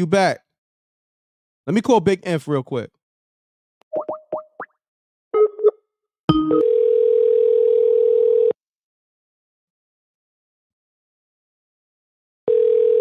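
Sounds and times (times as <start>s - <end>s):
phone ringing tone: 6.4s - 8.6s, 12.5s - 13.0s.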